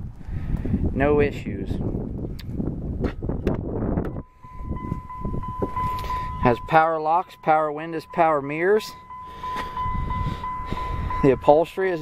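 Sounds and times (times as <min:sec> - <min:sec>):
wind: 0:00.0 - 0:12.0
door-open warning tone: 0:04.1 - 0:12.0.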